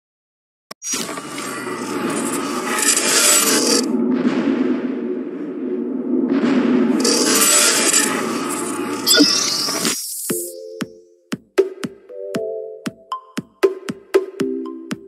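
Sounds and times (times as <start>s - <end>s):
scraping rush of noise: 1.0s - 10.0s.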